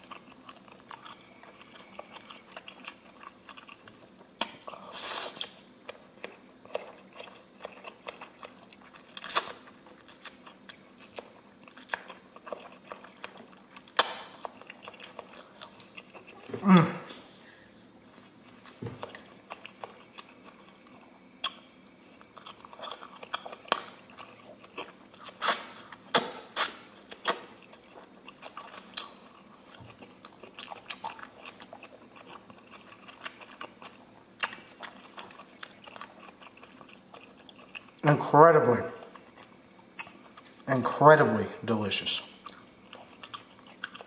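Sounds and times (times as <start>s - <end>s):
chewing noodles: 0.0s - 16.6s, 18.1s - 38.0s, 39.1s - 40.6s, 42.4s - 44.0s.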